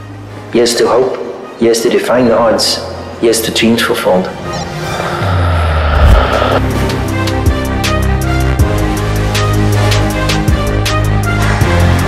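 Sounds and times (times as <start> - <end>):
soundtrack music with deep bass: 3.9 - 12.0
rushing whoosh: 4.4 - 7.2.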